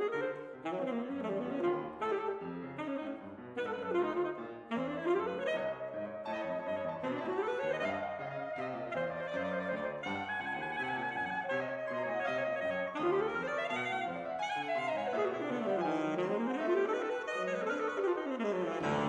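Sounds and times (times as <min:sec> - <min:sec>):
alto saxophone: 0:00.0 - 0:19.0
piano: 0:00.0 - 0:19.0.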